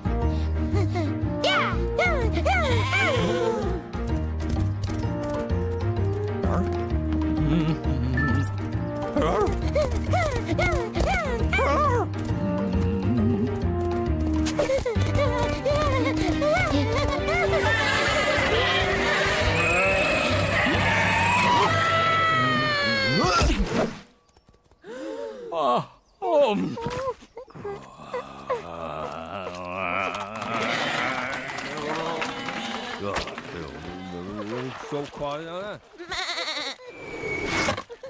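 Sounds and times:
sheep bleating and cheering: 0:15.2 - 0:23.2, 0:29.0 - 0:33.1
cartoon sheep bleating: 0:17.5 - 0:21.8, 0:36.0 - 0:36.8.

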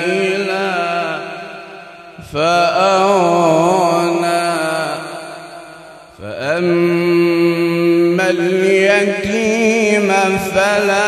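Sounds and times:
melodic recitation by a person: 0:00.0 - 0:11.0.

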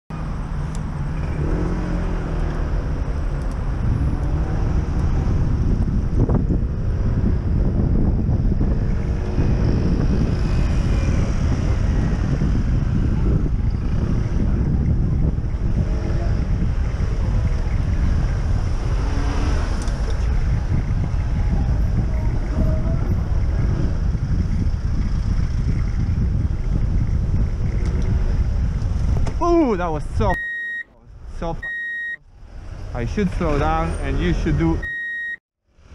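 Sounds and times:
road traffic and car engines: 0:00.1 - 0:35.9
wind buffeting microphone: 0:00.5 - 0:30.4.

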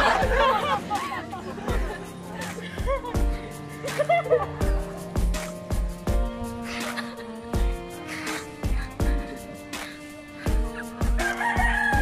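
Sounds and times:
music with steady beat: 0:00.0 - 0:12.0
rooster crowing: 0:11.2 - 0:12.0.

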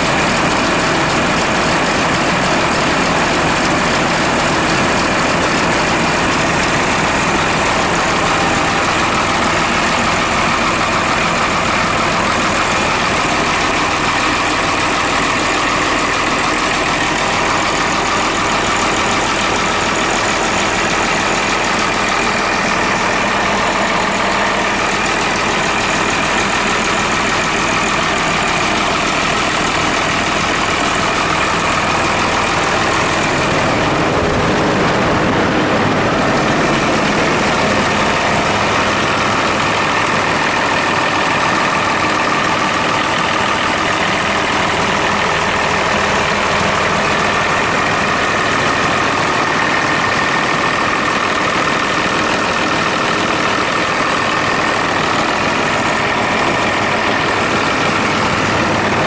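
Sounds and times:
diesel engine idling: 0:00.0 - 0:59.0.

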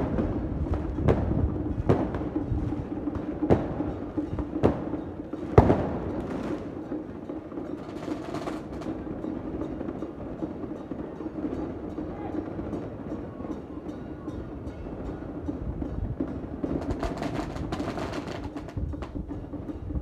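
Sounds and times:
faint percussion beats: 0:00.0 - 0:20.0.

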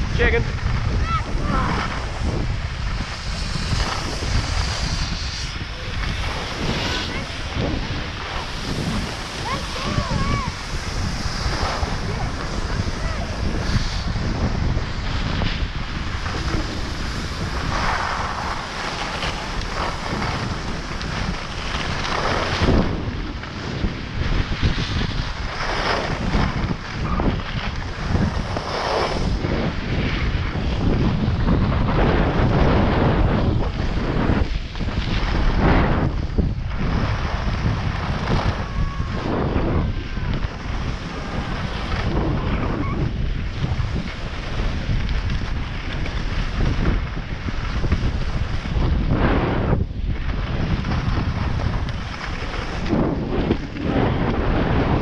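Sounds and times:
skis sliding on packed snow: 0:00.0 - 0:55.0
wind rushing over microphone: 0:00.0 - 0:55.0.

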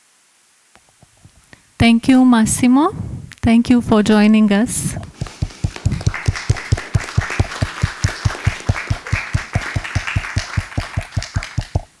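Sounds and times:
audience applauding: 0:05.1 - 0:12.0
close hands clapping evenly: 0:05.1 - 0:12.0.

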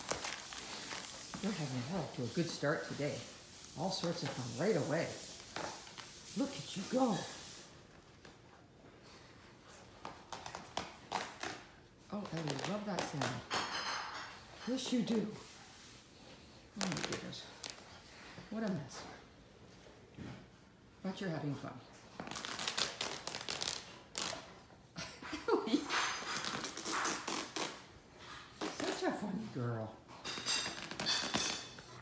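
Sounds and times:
dog tearing blanket: 0:00.0 - 0:07.6, 0:22.1 - 0:24.8, 0:26.2 - 0:28.9
fabric ripping: 0:22.2 - 0:24.6, 0:26.3 - 0:27.9.

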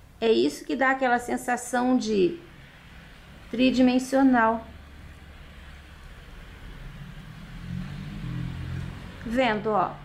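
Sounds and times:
low engine hum: 0:04.6 - 0:10.0.

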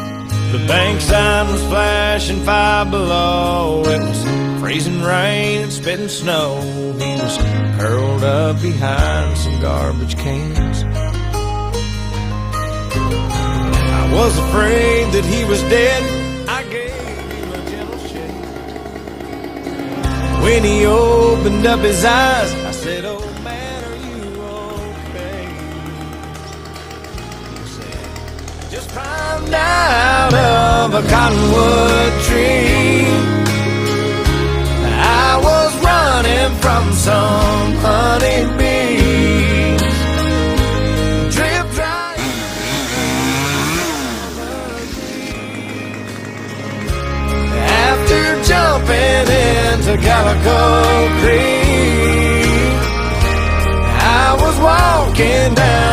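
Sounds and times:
country song: 0:00.0 - 0:55.9
small engine running: 0:12.9 - 0:55.9.

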